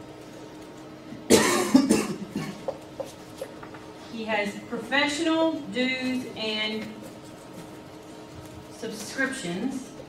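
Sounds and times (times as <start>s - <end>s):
person coughing: 1.3s - 2.8s.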